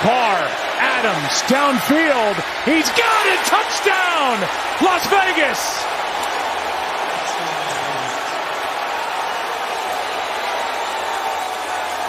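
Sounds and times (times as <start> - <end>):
stadium crowd roaring: 0.0 - 12.0.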